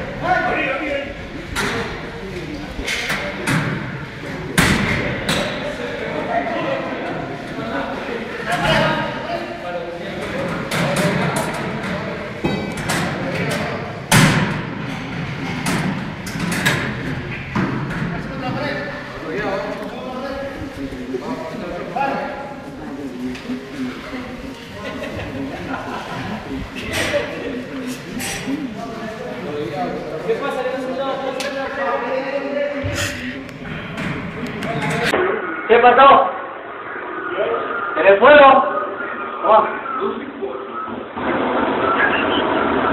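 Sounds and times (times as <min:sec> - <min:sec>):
men talking and calling: 0:00.0 - 0:41.2
indistinct voices: 0:00.0 - 0:42.9
hard bangs and thuds: 0:12.4 - 0:18.6.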